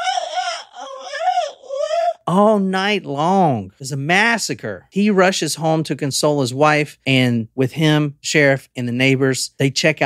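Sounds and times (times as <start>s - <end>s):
person wailing like sheep: 0.0s - 2.3s.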